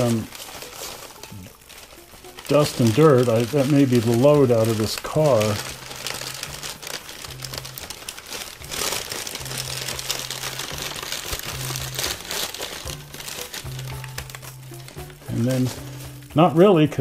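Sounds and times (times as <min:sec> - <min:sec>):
packing paper crumpling: 0:00.0 - 0:16.4.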